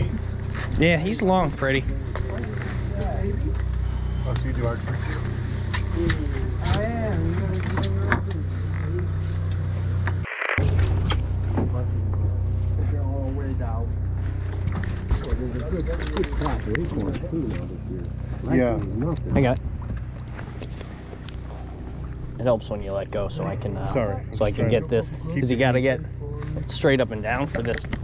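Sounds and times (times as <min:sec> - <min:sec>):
boat engine humming: 0:00.0 - 0:28.0
indistinct voices talking: 0:00.0 - 0:28.0.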